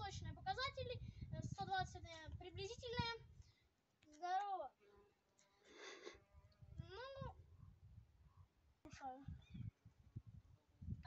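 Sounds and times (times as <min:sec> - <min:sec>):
wind rumble on microphone: 0:00.0 - 0:03.6, 0:06.3 - 0:11.0.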